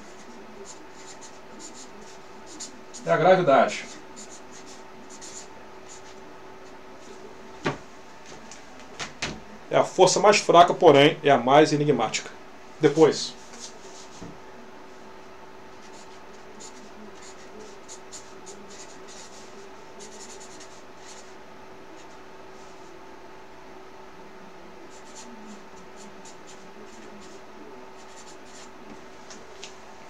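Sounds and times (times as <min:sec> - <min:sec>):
marker pen writing on paper: 0:00.0 - 0:03.1, 0:03.8 - 0:06.2, 0:15.8 - 0:21.4, 0:24.9 - 0:27.4, 0:28.0 - 0:29.0
faint steady hum: 0:00.0 - 0:30.0.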